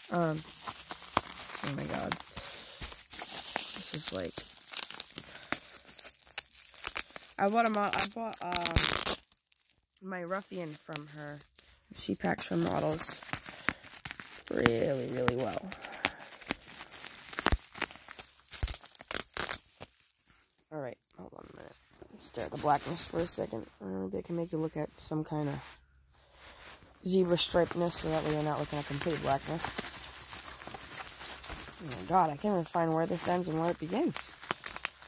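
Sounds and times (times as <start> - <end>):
bubble wrap and paper crinkling: 0.0 - 35.0.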